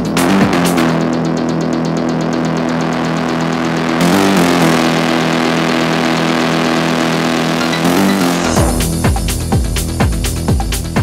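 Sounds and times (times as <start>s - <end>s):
buzzing synth chord: 0.0s - 9.6s
rapid hi-hat ticks: 0.0s - 11.0s.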